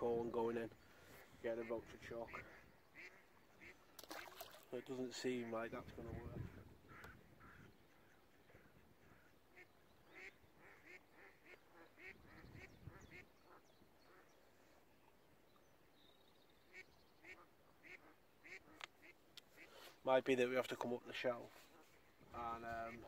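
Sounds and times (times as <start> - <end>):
distant waterfowl calling: 0.8 - 5.0, 6.4 - 14.8, 16.6 - 20.0.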